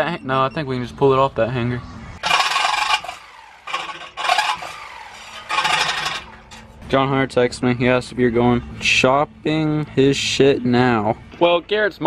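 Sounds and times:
reciprocating saw cutting metal: 0:02.2 - 0:06.7.

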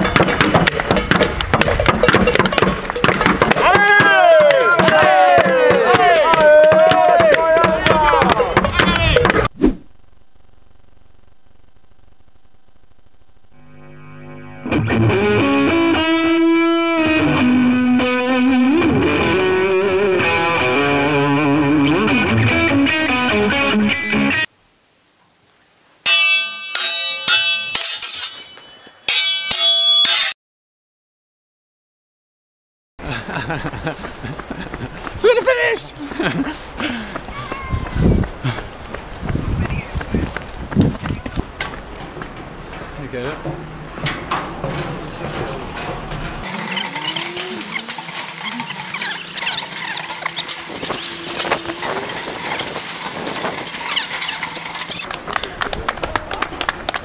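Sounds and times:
footsteps clanking on metal: 0:00.0 - 0:09.5, 0:40.1 - 0:55.1
footsteps on pavement: 0:00.0 - 0:09.5, 0:33.4 - 0:46.6
metal bell clanging: 0:00.8 - 0:03.4, 0:26.1 - 0:30.3, 0:46.5 - 0:55.1
short squeaks: 0:46.4 - 0:55.1.

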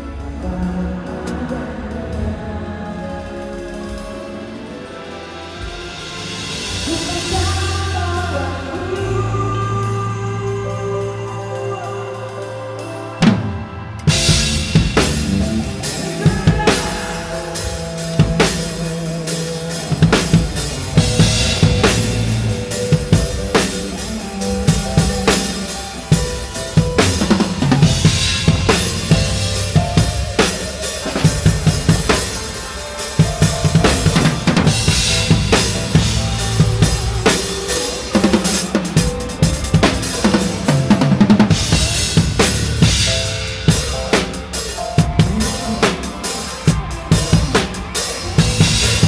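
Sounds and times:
band music: 0:00.0 - 0:49.0
drum kit playing: 0:00.0 - 0:49.0.

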